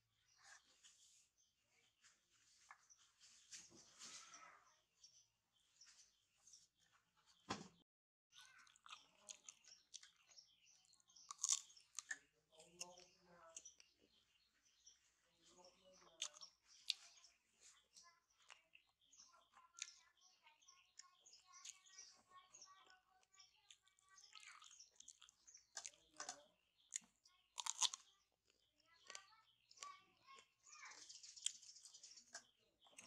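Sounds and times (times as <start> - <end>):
monkey crunching fruit: 11.2 - 13.8, 23.7 - 28.1.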